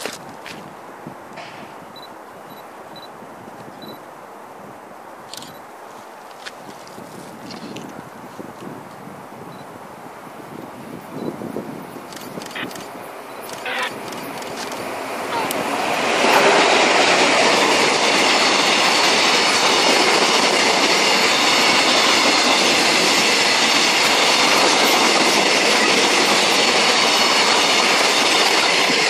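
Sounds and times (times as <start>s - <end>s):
freight train wheels on rails: 0.0s - 4.1s, 5.2s - 29.0s.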